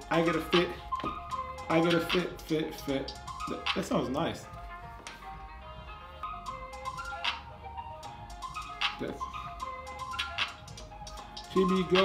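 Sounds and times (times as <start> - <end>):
rap instrumental beat: 0.0 - 12.0.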